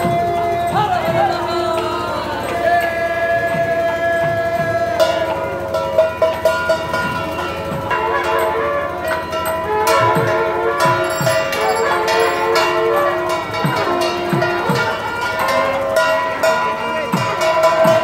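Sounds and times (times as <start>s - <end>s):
bells ringing: 0.0s - 18.0s
drum strokes: 0.0s - 18.0s
processional melody: 0.0s - 18.0s.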